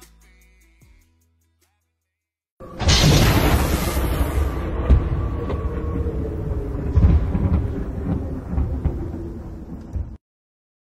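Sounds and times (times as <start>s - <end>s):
low rumbling impact tail: 2.8s - 10.2s.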